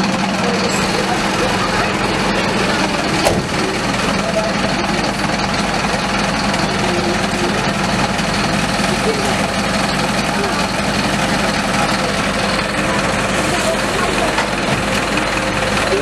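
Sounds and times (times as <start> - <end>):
diesel engine idling: 0.0 - 16.0
people's voices: 0.0 - 16.0.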